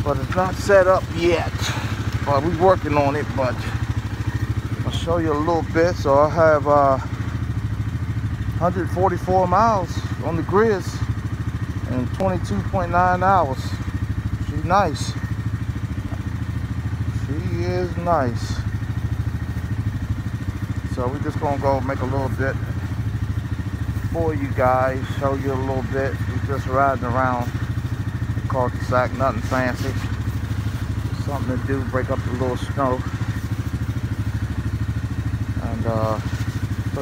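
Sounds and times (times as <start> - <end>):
engine idling: 0.0 - 37.0.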